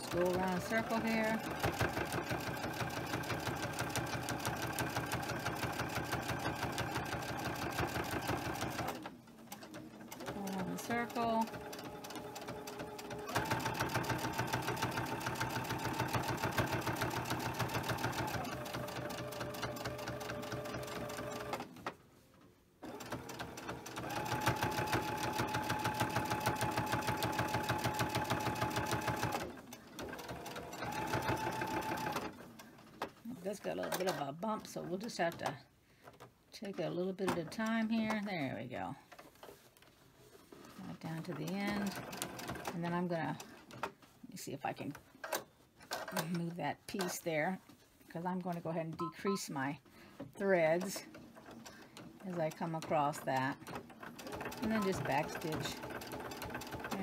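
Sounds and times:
sewing machine stitching: 0:00.0 - 0:21.9, 0:22.8 - 0:32.5, 0:40.6 - 0:43.8, 0:50.4 - 0:57.0.

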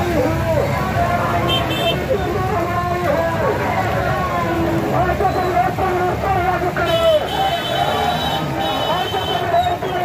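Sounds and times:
crowd voices: 0:00.0 - 0:10.0
motorcycle engines in traffic: 0:00.0 - 0:10.0.

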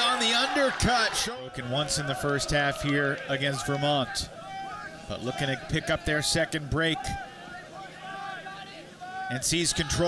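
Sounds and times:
background chatter: 0:00.0 - 0:10.0
faint voices calling out: 0:00.0 - 0:10.0.

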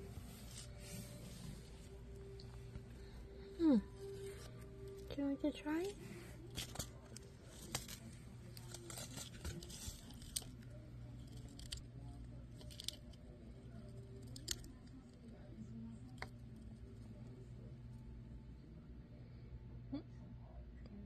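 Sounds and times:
hamster nibbling crunches: 0:06.1 - 0:17.8.

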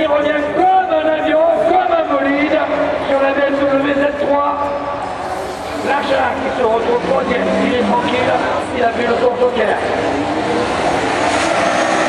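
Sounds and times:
man commentating: 0:00.0 - 0:10.2
racing car engines: 0:00.0 - 0:12.0.

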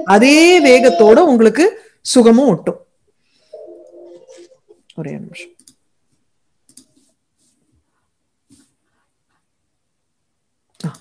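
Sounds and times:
woman's voice: 0:00.0 - 0:02.7, 0:04.9 - 0:05.5.

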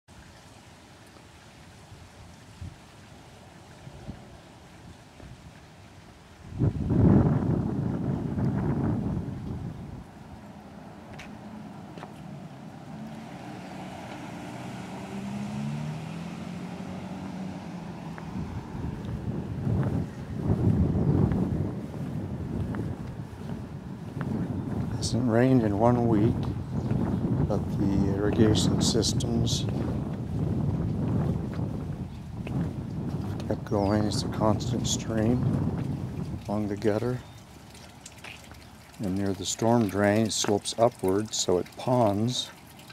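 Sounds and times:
wind buffeting microphone: 0:02.0 - 0:03.0, 0:03.8 - 0:42.9
faint distant engine hum: 0:07.7 - 0:42.9.

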